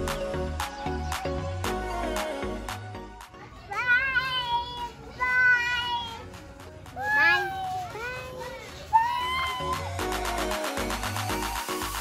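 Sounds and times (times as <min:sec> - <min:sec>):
background music: 0:00.0 - 0:12.0
child calling out: 0:07.0 - 0:09.9.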